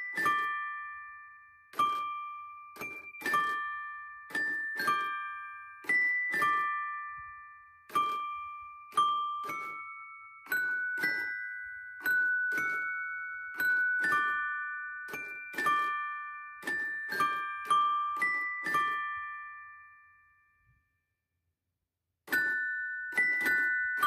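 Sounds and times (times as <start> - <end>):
music box chime melody: 0.0 - 20.8, 22.3 - 24.0.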